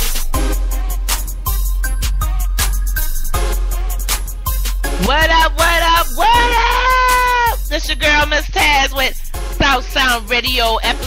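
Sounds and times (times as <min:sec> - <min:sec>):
hip hop bass line: 0:00.0 - 0:11.0
voice holding high note: 0:05.0 - 0:07.7.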